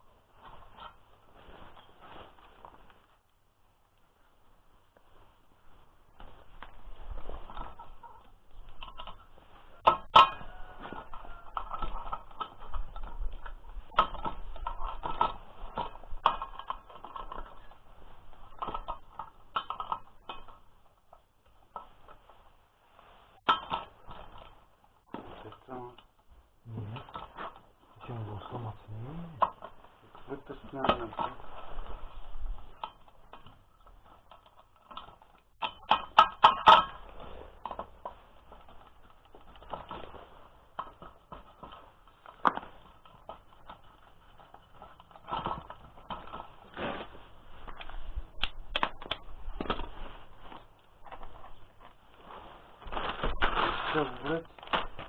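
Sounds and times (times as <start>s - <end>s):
metal clinking and tapping: 32.8s - 38.2s.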